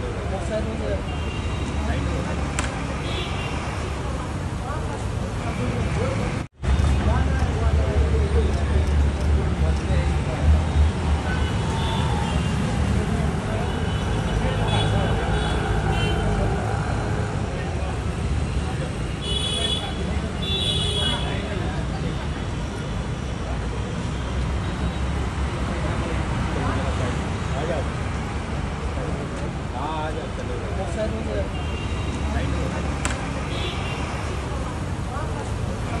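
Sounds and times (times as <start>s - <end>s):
murmur of voices: 0.0s - 36.0s
road traffic rumble: 0.0s - 36.0s.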